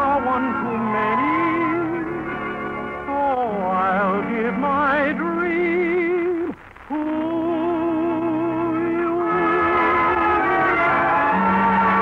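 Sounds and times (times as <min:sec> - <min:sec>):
orchestra music with vibrato melody: 0:09.2 - 0:12.0.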